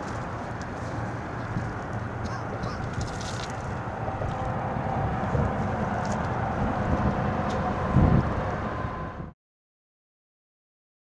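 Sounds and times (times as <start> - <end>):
wind rumbling on microphone: 0.0 - 9.4.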